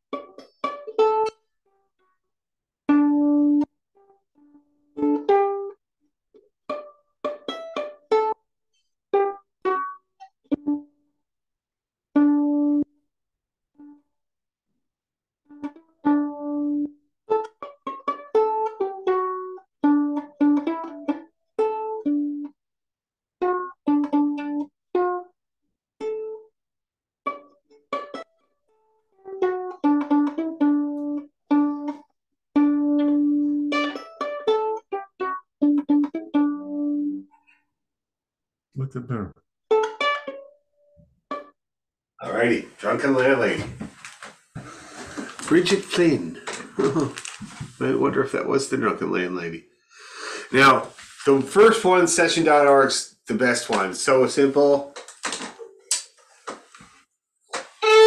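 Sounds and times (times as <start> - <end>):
plucked string instrument notes: 0.0 - 1.4, 2.9 - 5.8, 6.4 - 8.4, 9.1 - 10.9, 12.1 - 12.9, 15.5 - 22.6, 23.4 - 25.3, 26.0 - 26.5, 27.2 - 28.3, 29.2 - 37.4, 39.7 - 40.6, 41.3 - 41.5, 57.5 - 58.0.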